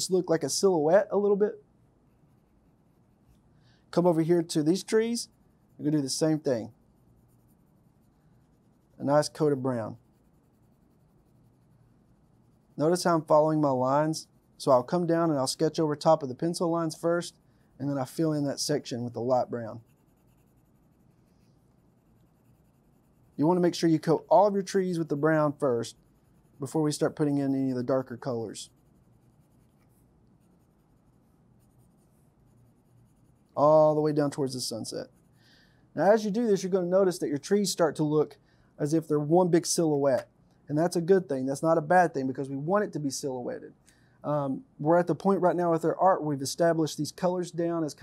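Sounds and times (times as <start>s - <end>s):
pencil scratching on paper: 2.0s - 3.4s, 4.0s - 35.4s.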